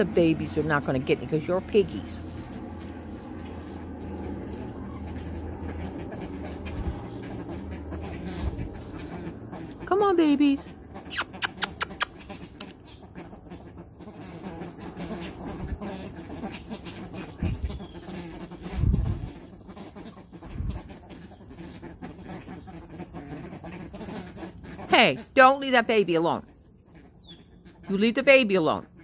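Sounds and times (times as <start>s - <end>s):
birds soft low calls: 0.0s - 29.0s.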